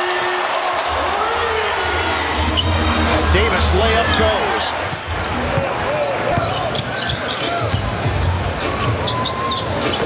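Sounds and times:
arena crowd noise: 0:00.0 - 0:10.0
sneaker squeaks: 0:06.3 - 0:10.0.

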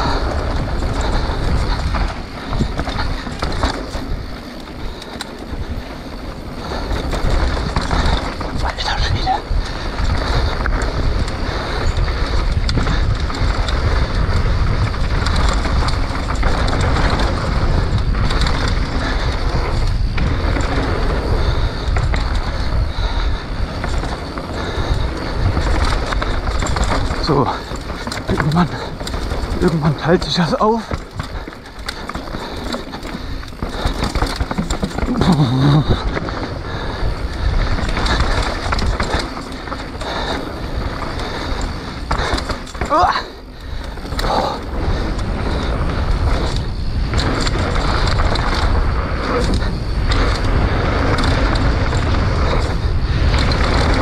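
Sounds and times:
bike rattling: 0:00.0 - 0:54.0
tyres rolling over dirt: 0:00.0 - 0:54.0
wind buffeting microphone: 0:00.0 - 0:54.0.

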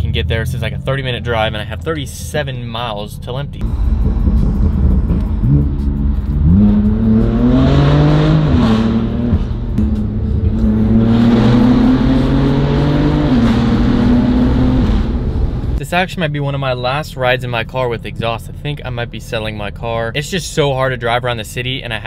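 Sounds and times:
car engine accelerating: 0:00.0 - 0:15.8.

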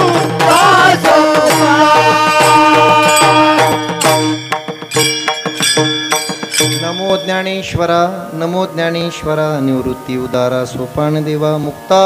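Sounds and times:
man chanting through loudspeakers: 0:06.9 - 0:12.0.

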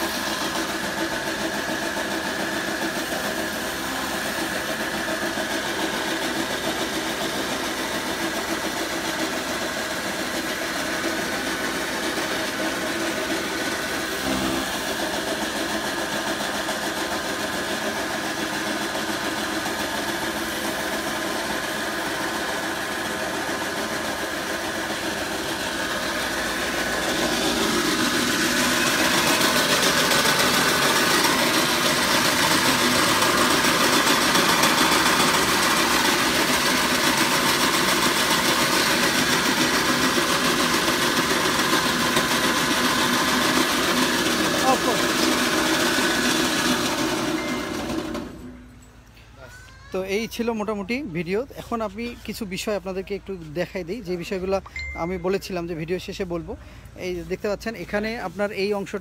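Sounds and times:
electric chaff cutter chopping straw: 0:00.0 - 0:48.7.

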